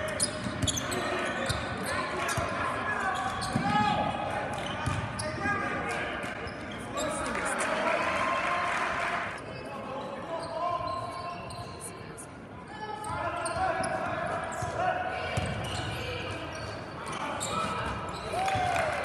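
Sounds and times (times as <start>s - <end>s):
sneakers squeaking: 0.0s - 7.4s, 9.4s - 18.7s.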